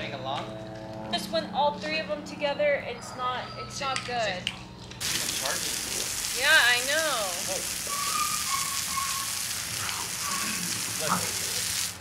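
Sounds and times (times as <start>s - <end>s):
hose spray hitting concrete: 5.0s - 12.0s.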